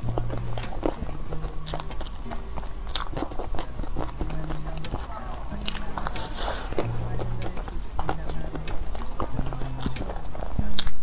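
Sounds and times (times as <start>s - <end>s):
low steady background tones: 0.0s - 11.0s
person chewing with wet smacks: 0.0s - 11.0s.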